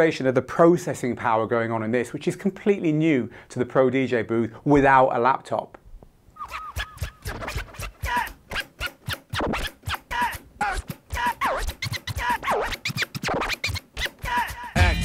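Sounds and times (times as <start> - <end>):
dj scratching: 6.4 - 15.0.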